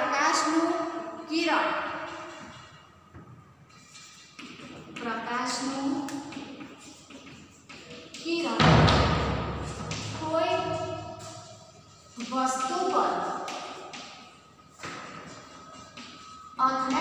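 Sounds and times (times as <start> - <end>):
woman speaking: 0.0 - 2.0, 5.0 - 6.2, 8.2 - 8.7, 10.0 - 11.2, 12.2 - 13.4, 16.6 - 17.0.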